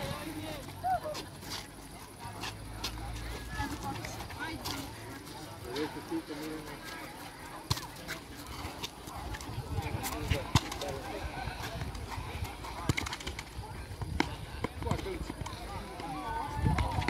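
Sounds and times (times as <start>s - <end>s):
people calling out: 0.0s - 1.4s
shoes striking asphalt: 0.0s - 17.0s.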